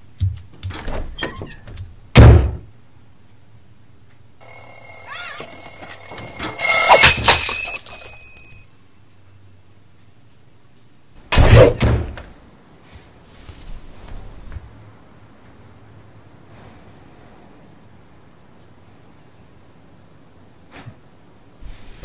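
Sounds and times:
loud thump: 0:02.2 - 0:02.6
bell-like ringing tone: 0:04.4 - 0:08.7.

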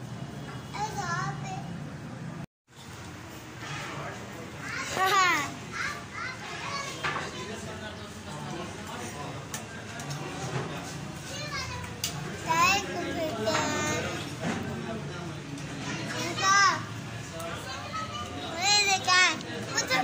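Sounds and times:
children calling and chattering: 0:00.6 - 0:02.0, 0:04.0 - 0:20.0.

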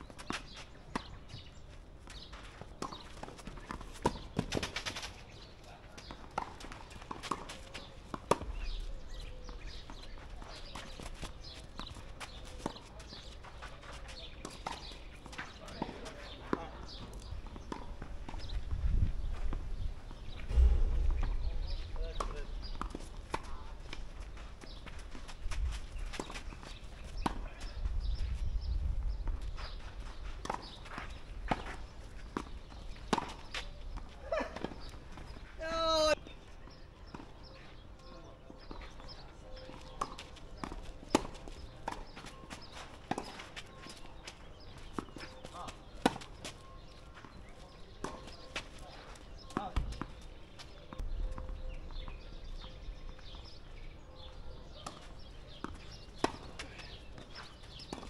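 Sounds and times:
wind gusts on microphone: 0:18.4 - 0:23.3
racket striking tennis ball: 0:20.5 - 0:24.0
player shouting: 0:35.6 - 0:36.2.

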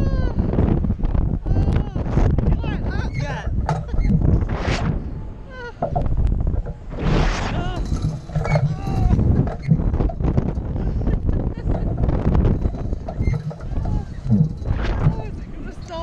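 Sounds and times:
wind buffeting microphone: 0:00.0 - 0:16.0
riders shrieking and laughing: 0:03.2 - 0:04.3.

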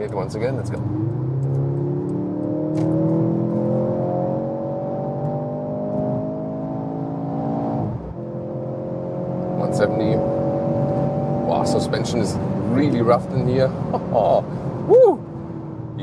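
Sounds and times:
car engine accelerating: 0:00.3 - 0:16.0.

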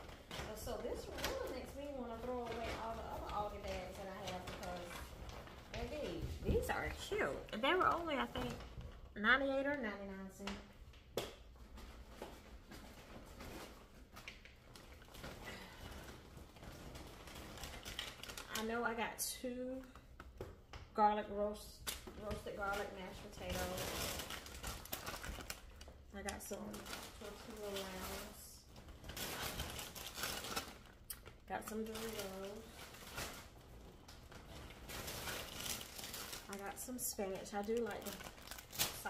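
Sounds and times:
plastic snack bag crinkling: 0:00.0 - 0:08.7, 0:13.2 - 0:19.0, 0:21.9 - 0:39.0
packaging rustling: 0:00.0 - 0:09.0, 0:11.5 - 0:18.9, 0:21.9 - 0:39.0.

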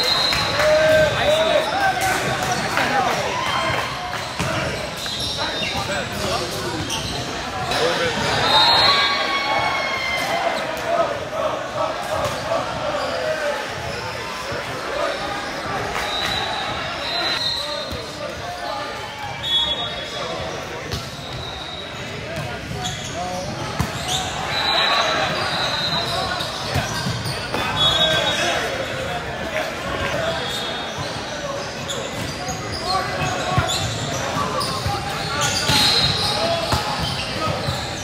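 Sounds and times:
many overlapping voices: 0:00.0 - 0:38.0.

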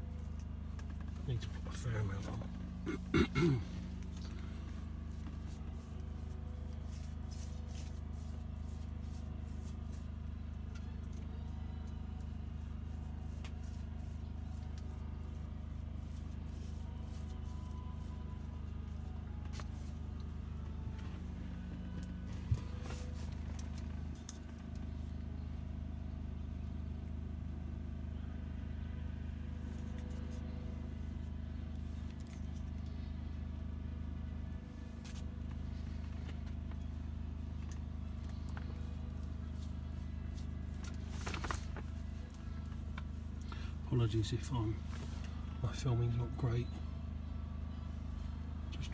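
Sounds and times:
low mechanical hum: 0:00.0 - 0:48.9.

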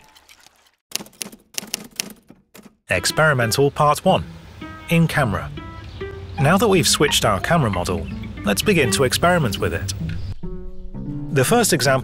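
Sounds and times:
typewriter keys clacking: 0:00.9 - 0:02.8.

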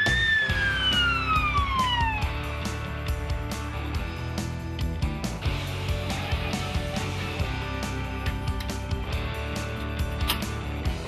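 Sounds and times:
fire engine siren: 0:00.0 - 0:02.9
background music with steady beat: 0:00.0 - 0:11.0.

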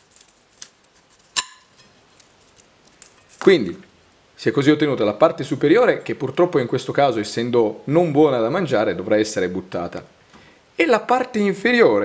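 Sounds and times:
knife striking plate: 0:01.4 - 0:02.0.

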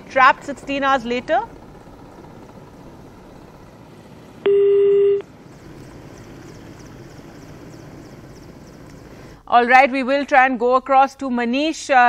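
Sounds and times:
telephone line hiss: 0:04.4 - 0:05.2
telephone line tone beep: 0:04.5 - 0:05.2.

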